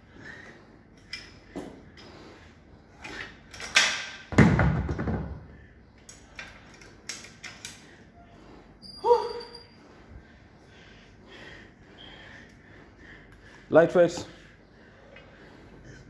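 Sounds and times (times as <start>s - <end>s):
heavy thud on rubber floor: 4.3s - 5.4s.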